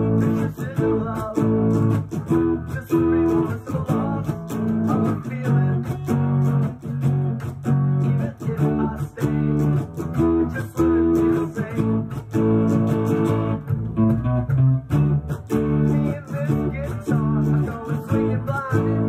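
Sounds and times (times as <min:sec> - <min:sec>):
electric guitar strumming chords: 0:00.0 - 0:19.0.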